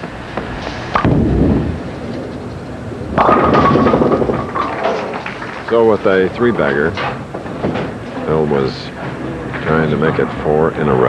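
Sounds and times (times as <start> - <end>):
bowling ball rolling on wood: 0.0 - 10.7
bowling pins crashing: 1.0 - 8.4
bowling ball thud on lane: 3.1 - 5.6.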